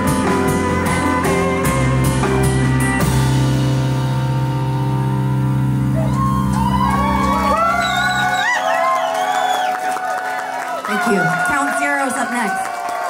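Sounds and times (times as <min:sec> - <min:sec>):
audience whoops and shouts: 0:05.9 - 0:13.0.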